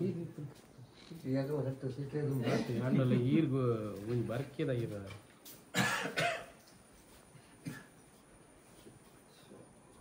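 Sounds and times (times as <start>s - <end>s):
man coughing: 5.7s - 6.5s.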